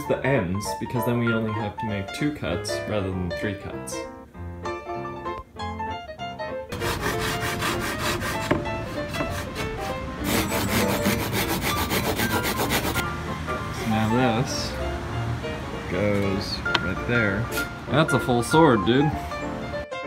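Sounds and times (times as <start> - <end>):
background music: 0.0 - 20.0
hand saw cutting wood: 6.7 - 13.0.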